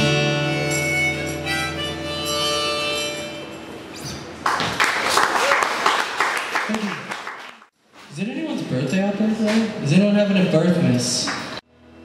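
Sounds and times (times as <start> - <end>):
harmonica and acoustic guitar: 0.0 - 4.1
audience applauding: 4.4 - 7.7.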